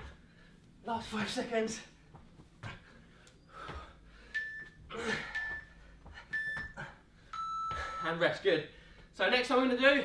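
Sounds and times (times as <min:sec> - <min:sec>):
hard breathing: 0:02.6 - 0:08.0.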